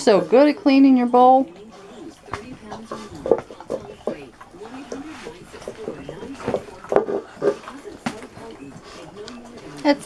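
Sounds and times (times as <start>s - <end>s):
puppy licking a bowl: 0.0s - 10.0s
plastic bowl knocking on tiles: 2.3s - 4.3s, 5.6s - 8.3s.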